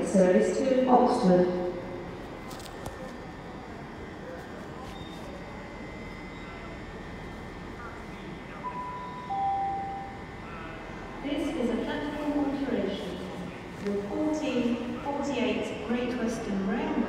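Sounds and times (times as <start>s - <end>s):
station background hum: 0.0s - 17.0s
two-tone public address chime: 8.5s - 11.1s.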